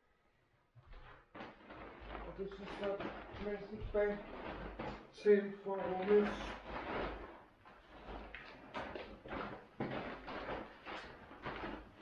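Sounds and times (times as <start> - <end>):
plastic bag rustling: 0.9 - 12.0.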